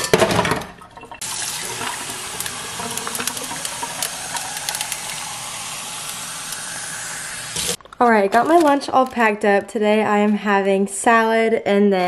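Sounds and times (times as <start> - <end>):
faucet filling metal tumbler: 0.0 - 7.8.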